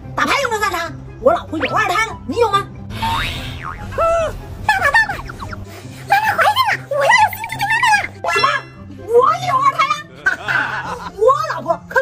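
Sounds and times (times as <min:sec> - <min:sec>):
background music: 0:00.0 - 0:12.0
cartoon boing: 0:03.0 - 0:04.0.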